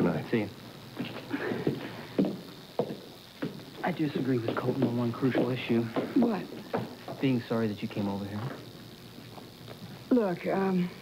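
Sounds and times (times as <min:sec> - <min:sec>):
footsteps on hard floor: 0:01.0 - 0:07.4.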